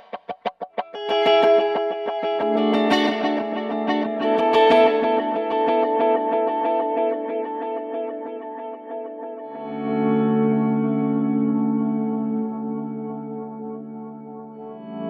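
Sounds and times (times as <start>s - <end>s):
guitar with echo repeats: 0.0s - 15.0s.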